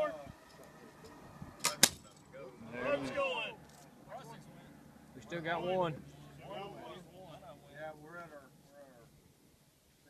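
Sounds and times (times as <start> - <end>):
rope snapping: 1.6 - 2.0.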